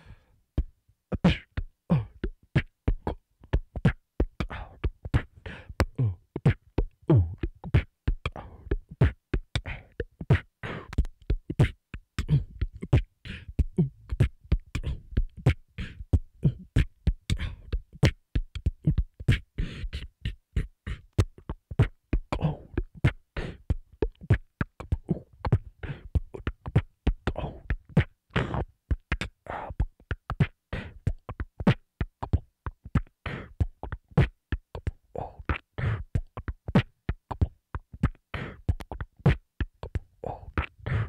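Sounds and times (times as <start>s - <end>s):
beatboxing: 0.0s - 41.0s.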